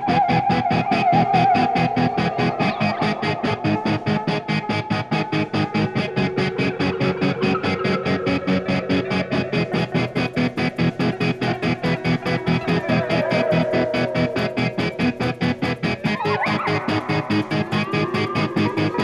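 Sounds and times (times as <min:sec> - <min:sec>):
instrumental rock band playing: 0:00.1 - 0:19.0.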